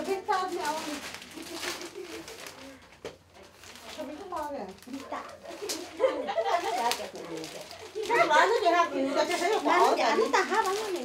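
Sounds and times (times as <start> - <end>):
people talking: 0.0 - 2.8, 3.8 - 11.0.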